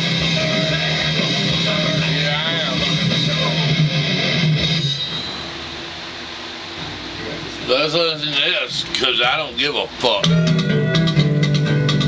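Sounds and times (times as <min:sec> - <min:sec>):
steady room noise: 0:00.0 - 0:12.0.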